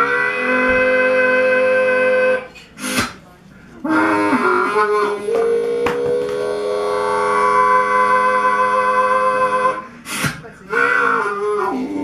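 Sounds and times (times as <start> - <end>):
harmonica notes bending: 0.0 - 3.1, 3.8 - 12.0.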